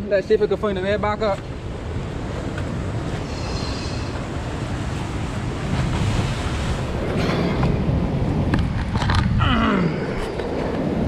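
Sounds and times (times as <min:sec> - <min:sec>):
surf: 0:00.0 - 0:11.0
wind rumbling on microphone: 0:00.0 - 0:11.0.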